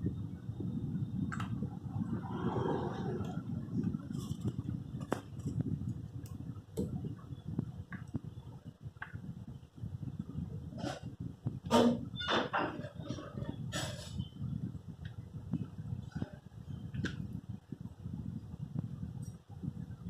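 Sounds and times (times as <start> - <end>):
steady low rumble: 0.0 - 20.0.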